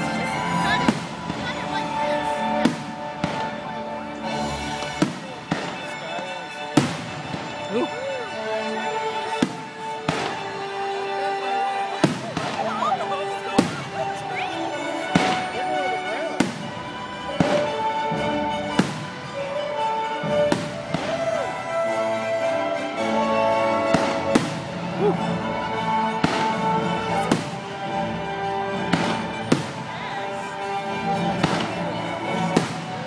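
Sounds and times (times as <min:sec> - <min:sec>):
concert band playing: 0:00.0 - 0:33.0.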